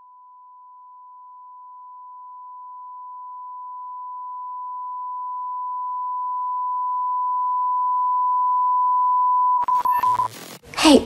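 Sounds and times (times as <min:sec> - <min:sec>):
electronic beep tone: 0:06.4 - 0:10.4.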